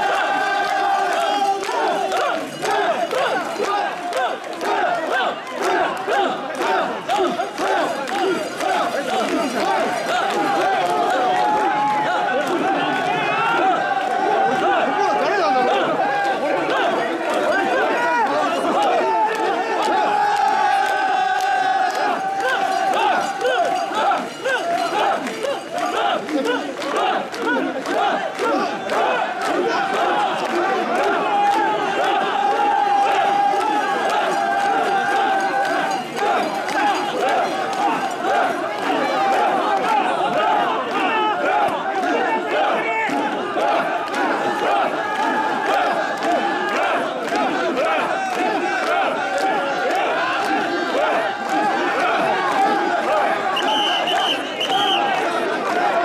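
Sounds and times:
crowd shouting together: 0.0 - 56.0.

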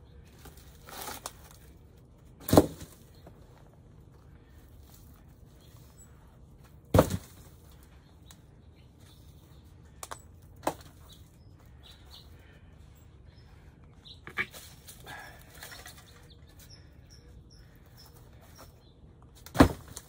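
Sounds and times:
low background noise: 0.0 - 20.0.

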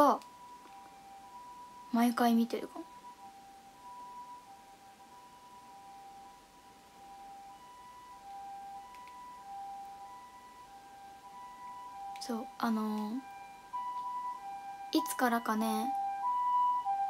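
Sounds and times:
soft hiss: 0.0 - 14.8.

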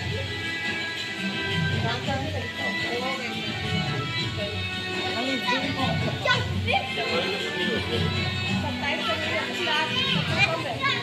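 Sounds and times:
crowd talking: 0.0 - 11.0
children chattering and calling out: 2.4 - 11.0.

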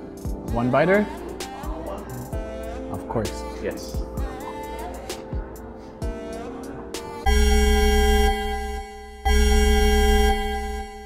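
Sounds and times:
loud organ chord: 7.2 - 11.0.

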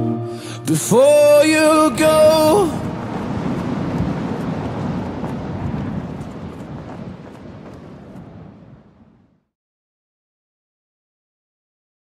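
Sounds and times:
reverberant noisy wash: 0.4 - 8.2
man singing pop vocal: 0.5 - 3.0.

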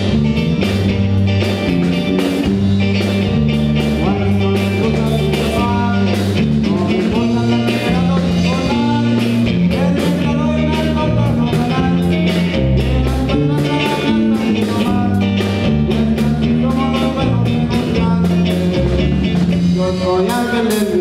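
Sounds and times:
bass guitar: 0.0 - 21.0
electric guitar: 0.0 - 21.0
steady drum beat: 0.0 - 21.0.

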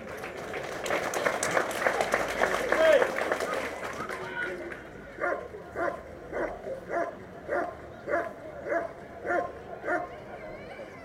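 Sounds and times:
dog barking: 5.2 - 10.1.

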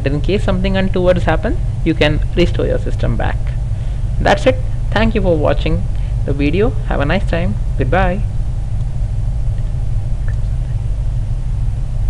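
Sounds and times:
low electrical hum: 0.0 - 12.0.

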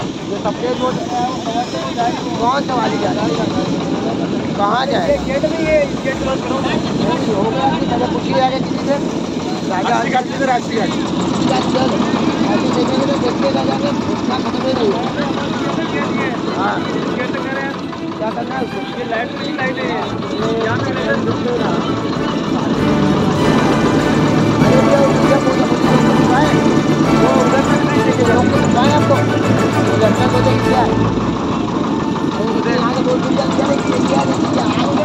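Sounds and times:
boat engine running: 0.0 - 35.0
people chattering: 0.0 - 35.0.

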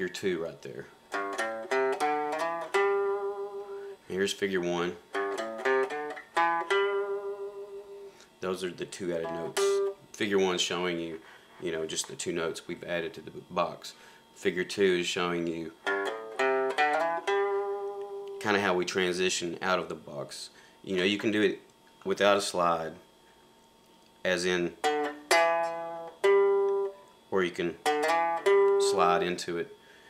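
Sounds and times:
guitar playing blues lick: 1.1 - 10.0, 15.7 - 18.5, 24.5 - 29.4.

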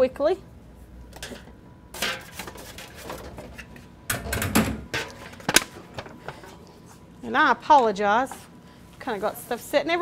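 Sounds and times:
kitchenware knocking and clattering: 4.1 - 5.1.

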